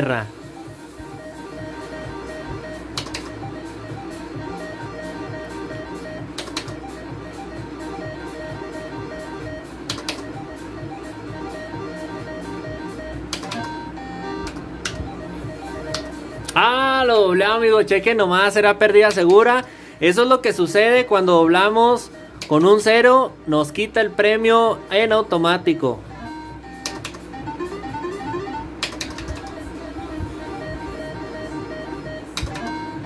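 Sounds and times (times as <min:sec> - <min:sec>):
slot machine game music: 0:00.0 - 0:33.0
slot machine reel click: 0:02.8 - 0:03.6, 0:05.4 - 0:07.0, 0:08.7 - 0:10.6, 0:13.3 - 0:15.1, 0:15.8 - 0:17.4, 0:26.8 - 0:29.6, 0:32.3 - 0:33.0.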